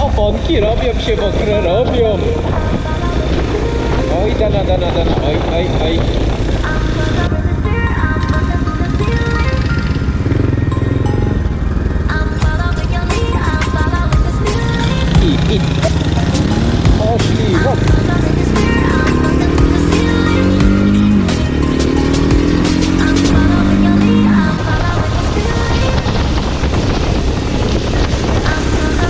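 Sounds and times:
background music: 0.0 - 29.0
motorcycle engine: 0.0 - 29.0.

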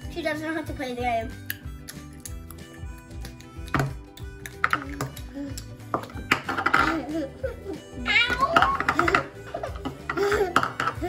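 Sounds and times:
child's voice: 0.0 - 1.4, 8.0 - 9.2
background music with held tones: 0.0 - 11.0.

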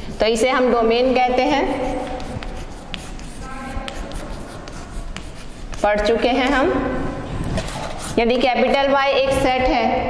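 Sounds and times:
woman speaking: 0.2 - 2.0, 5.8 - 7.0, 8.2 - 10.0
writing strokes scratching: 1.4 - 6.6, 7.6 - 8.4.

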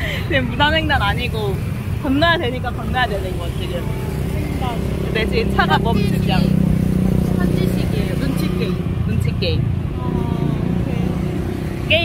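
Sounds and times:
cars passing: 0.0 - 12.0.

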